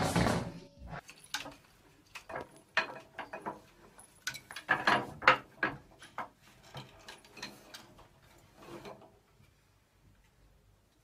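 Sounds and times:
wooden rungs knocking: 1.1s - 8.0s.

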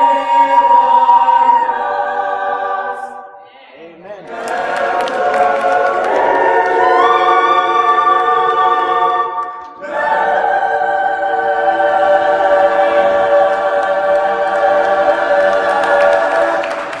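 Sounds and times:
mixed choir singing a cappella: 0.0s - 17.0s.

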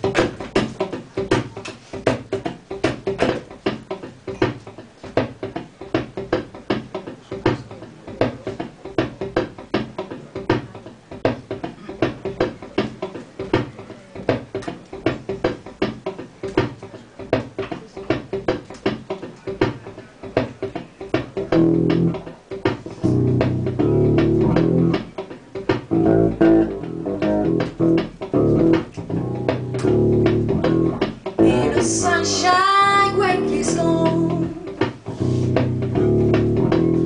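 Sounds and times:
low pitched notes: 22.9s - 25.2s, 25.9s - 32.4s, 33.0s - 37.0s.

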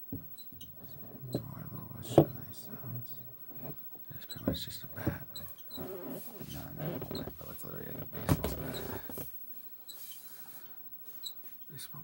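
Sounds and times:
handling rustling and scraping: 4.5s - 11.6s.

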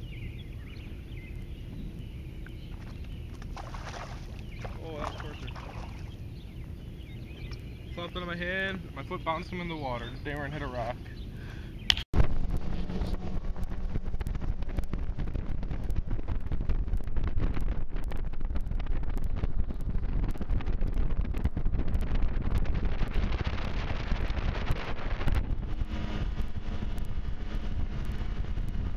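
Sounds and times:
outboard motor running: 0.0s - 28.9s
wind buffeting microphone: 0.0s - 28.9s
water rushing past hull: 2.7s - 6.2s.

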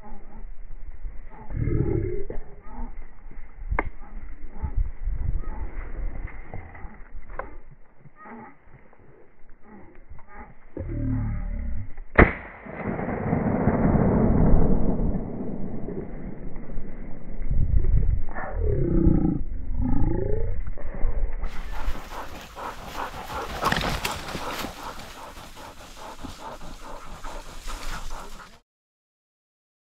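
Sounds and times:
low rumbling on microphone: 0.0s - 28.6s
dry brush and twigs crackling: 21.5s - 28.6s.

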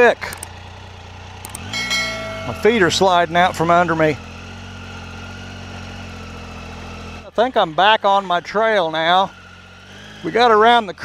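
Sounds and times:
motorcycle engine running low: 0.0s - 11.0s.

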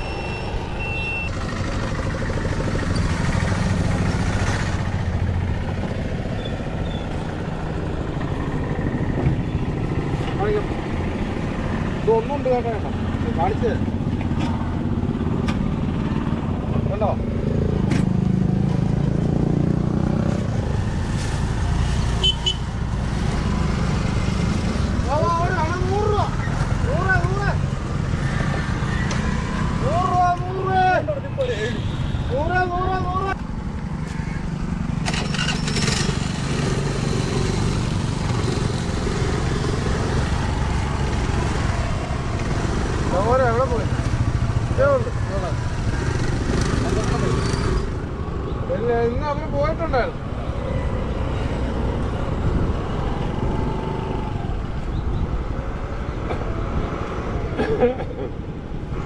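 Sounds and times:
motorcycle engines: 0.0s - 59.0s
passing road traffic: 0.0s - 59.0s.

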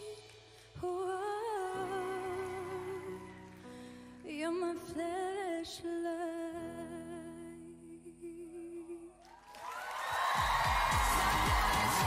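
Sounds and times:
audience cheering: 9.3s - 12.0s.

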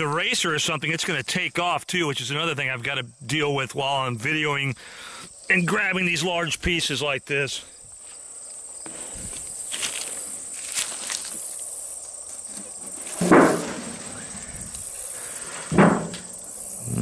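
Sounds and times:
insects trilling: 0.0s - 17.0s
board handling noises: 12.3s - 17.0s.

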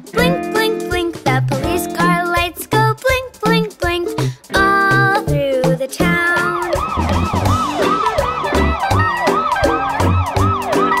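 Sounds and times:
children's song backing music: 0.0s - 11.0s
cartoon police siren wailing: 6.3s - 11.0s.

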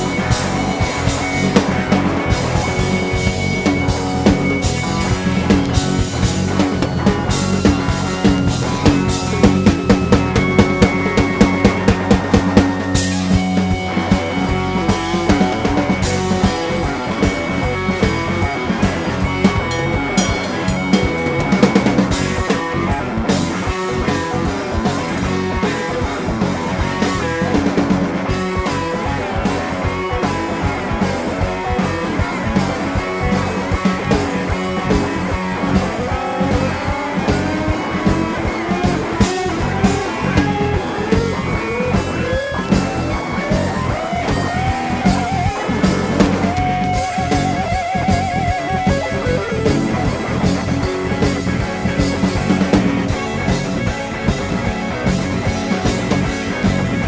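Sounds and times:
bass guitar: 0.0s - 57.0s
drum kit: 0.0s - 57.0s
electric guitar: 0.0s - 57.0s.

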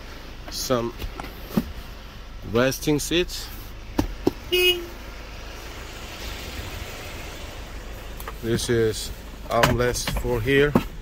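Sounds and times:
vehicle horn toot: 4.5s - 5.0s.

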